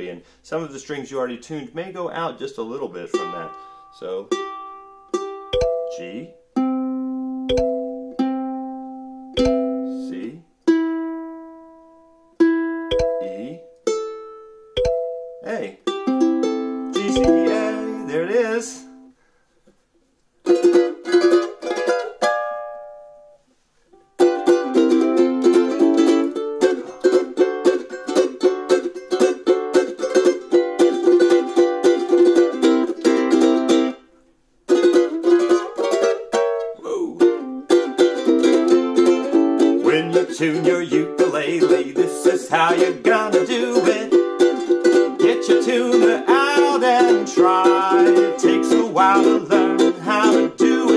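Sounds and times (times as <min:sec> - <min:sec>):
ukulele strumming: 0:02.6 - 0:19.1, 0:20.4 - 0:50.9
ukulele strings plucked: 0:03.1 - 0:03.6, 0:04.3 - 0:19.1, 0:20.4 - 0:23.4, 0:24.0 - 0:34.0, 0:34.7 - 0:50.9.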